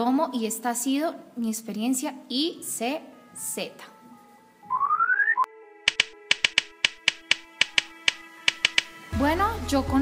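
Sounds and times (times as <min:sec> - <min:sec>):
rising electronic tone: 0:04.7 - 0:05.5
sharp clicks: 0:05.9 - 0:09.0.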